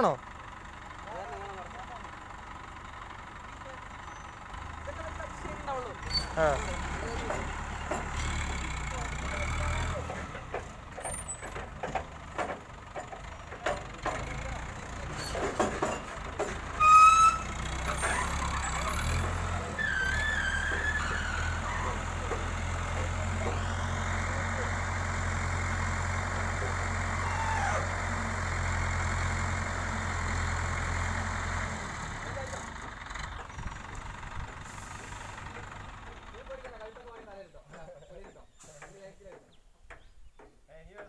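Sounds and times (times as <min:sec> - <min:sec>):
crane diesel engine running: 0:00.0 - 0:37.1.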